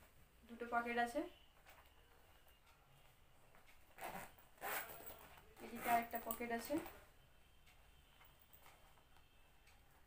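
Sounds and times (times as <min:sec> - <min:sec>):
bag zip being pulled: 0:04.0 - 0:06.2.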